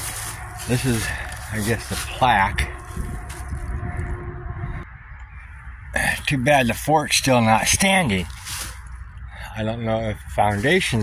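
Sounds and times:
low rumble on microphone: 0.0 - 6.4.

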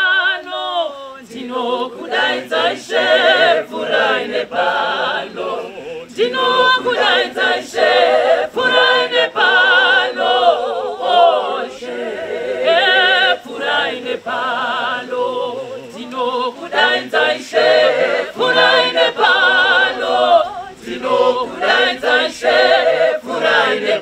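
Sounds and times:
mixed choir singing a cappella: 0.0 - 24.0
woman singing lead: 0.0 - 24.0.

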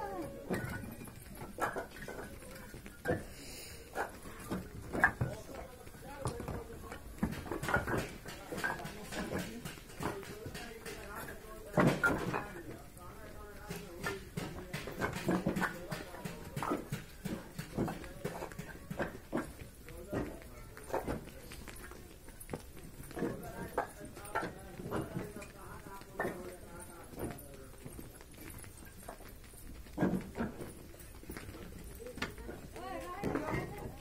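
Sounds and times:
bricks clacking together: 7.2 - 12.6.

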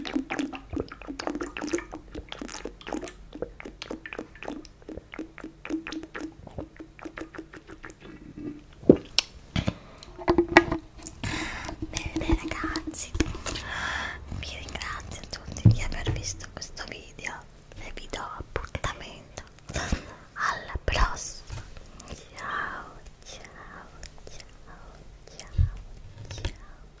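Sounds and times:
small mouth clicks: 0.0 - 9.3, 11.0 - 13.7, 14.4 - 19.8, 22.0 - 26.9
woman whispering: 12.0 - 13.3, 14.4 - 27.0
soft thumps: 15.3 - 16.5.

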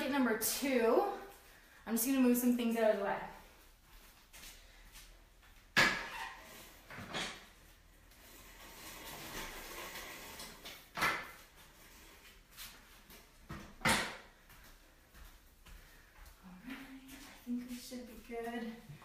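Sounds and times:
sharp knocks of gym equipment: 13.8 - 14.3.

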